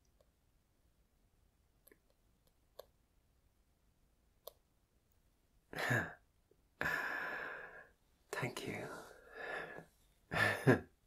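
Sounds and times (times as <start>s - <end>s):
man whispering: 8.3s - 9.9s.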